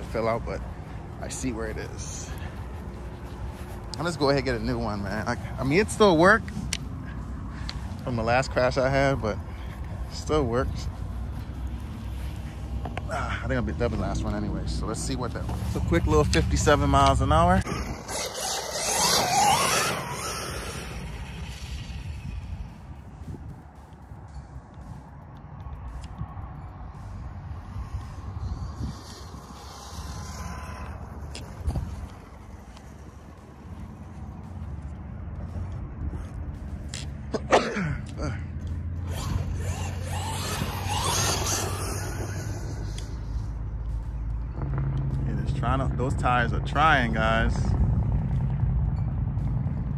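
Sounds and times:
electric motor whining: 16.3s - 22.7s, 39.0s - 43.4s.

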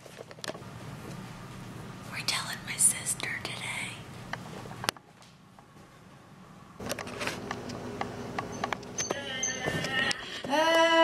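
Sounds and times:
person whispering: 2.1s - 4.1s.

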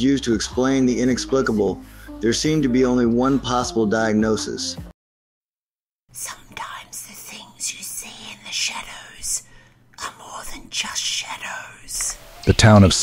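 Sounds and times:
person whispering: 6.2s - 9.4s, 10.0s - 12.2s.

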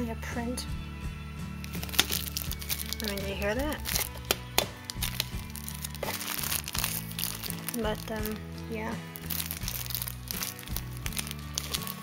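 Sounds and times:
background music low notes: 0.0s - 12.0s
plastic packaging crinkling: 1.6s - 12.0s.

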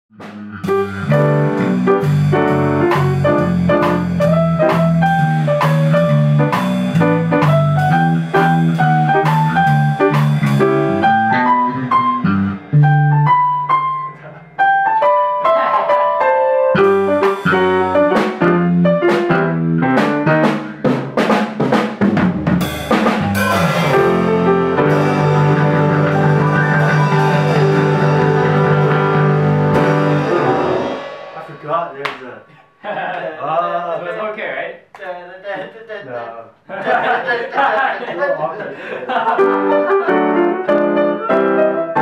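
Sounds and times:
jazz piano trio: 0.1s - 32.4s, 39.0s - 42.0s
drums and cymbals: 0.2s - 10.9s, 16.8s - 32.3s.

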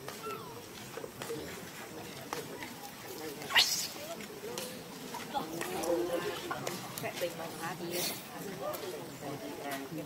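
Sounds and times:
monkey squealing: 3.5s - 4.0s.

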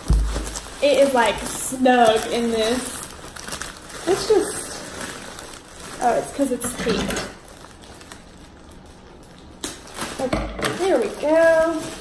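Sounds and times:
plastic and tissue paper rustling: 0.0s - 12.0s.

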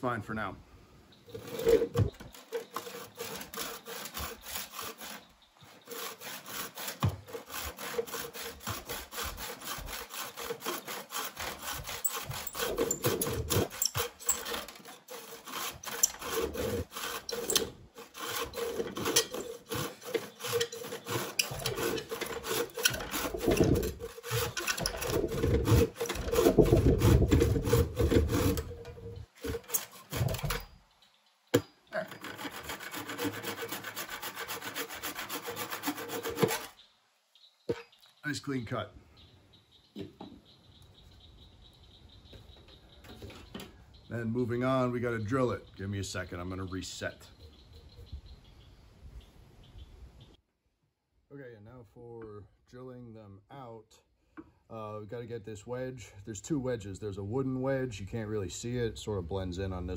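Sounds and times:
hand saw cutting wood: 1.3s - 30.8s, 32.0s - 36.8s.

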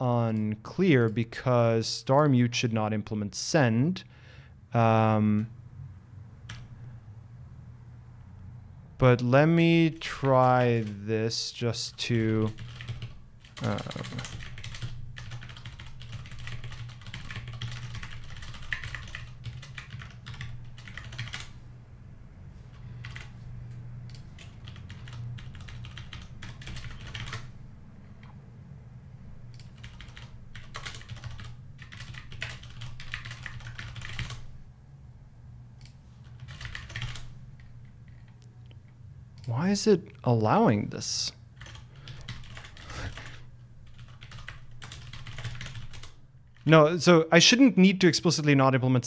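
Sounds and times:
steady low hum: 0.0s - 49.0s
typing on computer keyboard: 10.1s - 11.0s, 12.1s - 21.6s, 23.0s - 23.3s, 24.1s - 27.5s, 29.5s - 34.5s, 35.8s - 38.4s, 41.6s - 46.6s.

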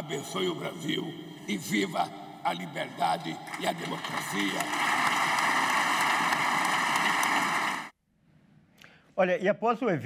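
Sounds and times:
large audience applause: 3.4s - 7.9s.

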